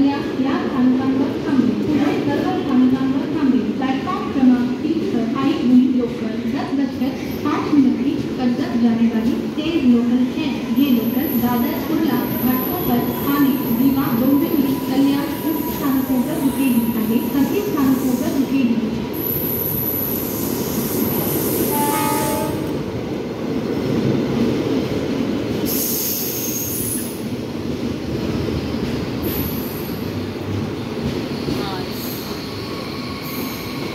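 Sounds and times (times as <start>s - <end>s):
train wheels rumbling on rails: 0.0s - 33.9s.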